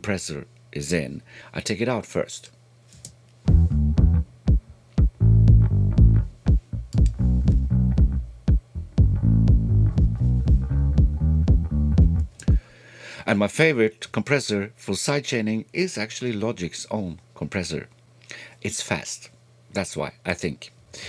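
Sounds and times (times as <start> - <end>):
drum machine hits: 3.5 - 12.7
electric bass line: 3.5 - 12.7.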